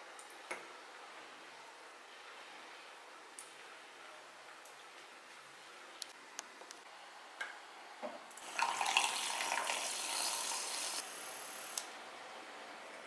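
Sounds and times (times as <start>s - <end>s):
milk pouring into a cup: 8.4s - 10.7s.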